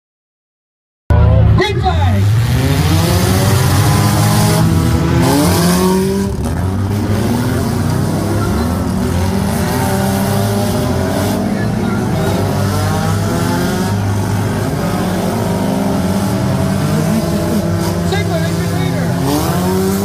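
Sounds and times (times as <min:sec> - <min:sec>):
race car engines revving: 0:01.1 - 0:20.0.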